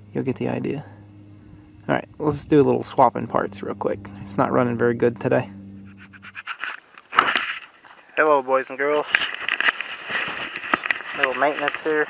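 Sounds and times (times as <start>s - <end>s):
steady low hum: 0.0s - 8.6s
camera handling clicks and rubbing: 6.2s - 7.7s, 9.0s - 11.8s.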